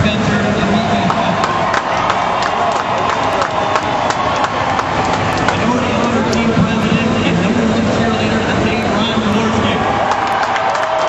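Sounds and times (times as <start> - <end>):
man speaking over loudspeakers: 0.0 - 1.5, 5.5 - 9.9
crowd noise: 0.0 - 11.0.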